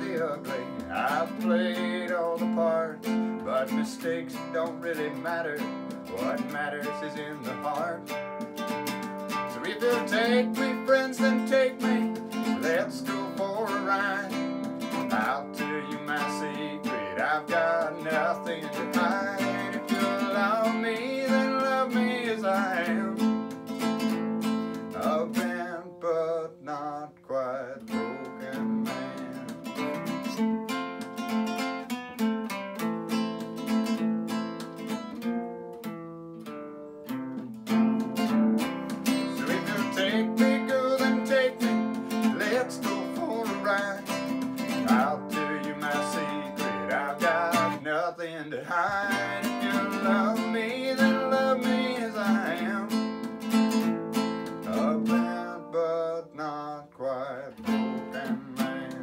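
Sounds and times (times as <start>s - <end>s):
acoustic guitar strumming chords: 0.0s - 59.0s.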